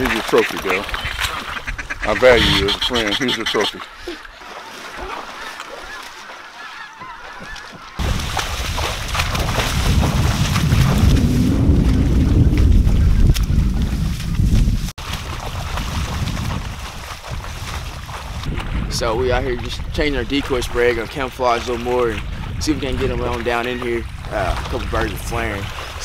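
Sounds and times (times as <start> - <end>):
geese honking: 0.3 - 4.0, 5.3 - 8.0.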